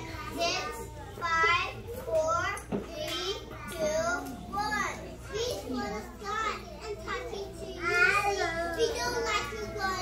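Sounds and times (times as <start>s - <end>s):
young children talking: 0.0s - 10.0s.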